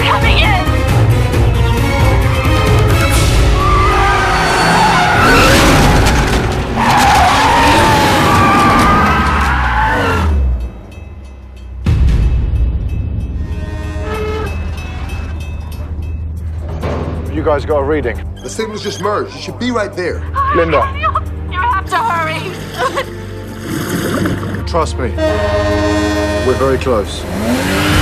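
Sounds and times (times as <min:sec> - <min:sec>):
car tyres squealing: 0:03.4 - 0:10.6, 0:13.4 - 0:15.4.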